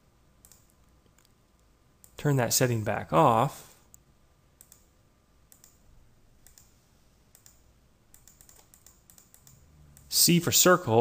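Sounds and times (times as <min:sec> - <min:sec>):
computer mouse clicks: 0:00.4 - 0:02.2, 0:04.6 - 0:04.9, 0:05.5 - 0:05.8, 0:06.4 - 0:10.1.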